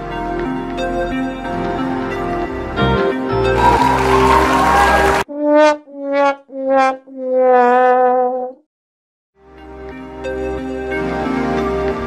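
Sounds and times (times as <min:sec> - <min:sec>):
electronic music: 0:03.3 - 0:05.3.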